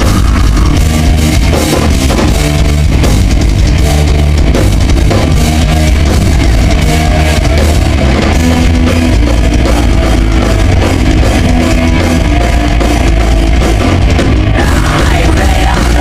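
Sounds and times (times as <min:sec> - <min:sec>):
distorted electric guitars: 0:00.0 - 0:16.0
drum kit: 0:00.0 - 0:16.0.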